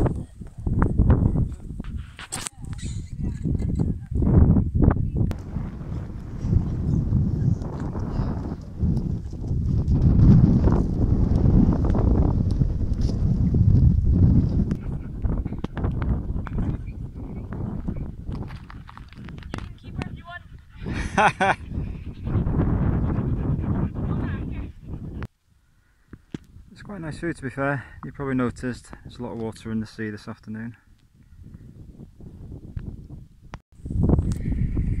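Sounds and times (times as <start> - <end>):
wind buffeting microphone: 0.0 - 25.3, 26.0 - 35.0.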